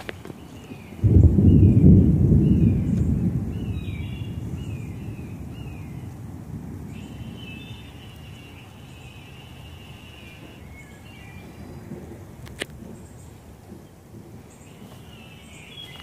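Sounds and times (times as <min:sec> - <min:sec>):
thunder rumbling: 0:00.0 - 0:16.0
bird calling: 0:06.9 - 0:16.0.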